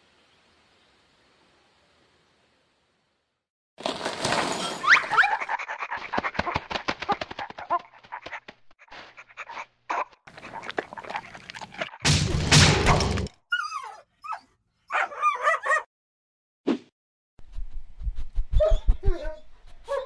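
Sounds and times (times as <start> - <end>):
dog whining: 13.5 - 15.8, 18.6 - 20.0.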